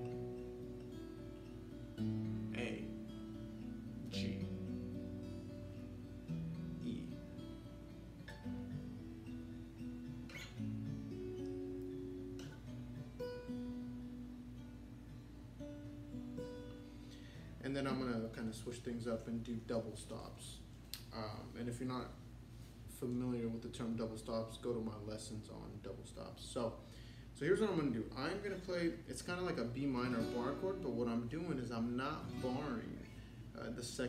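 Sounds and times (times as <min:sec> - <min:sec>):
acoustic guitar picking chords: 0:00.0 - 0:21.6, 0:26.8 - 0:34.0.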